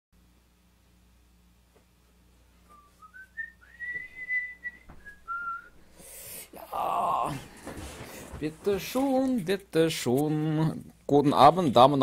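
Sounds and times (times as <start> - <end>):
man whistling a tune: 2.7 - 5.8.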